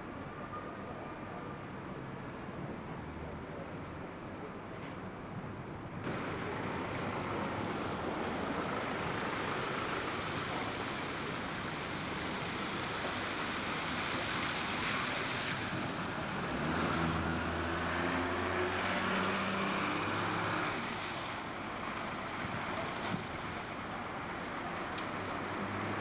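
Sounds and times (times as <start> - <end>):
traffic rumble: 0.0 - 26.0
bus diesel engine passing: 6.1 - 23.1.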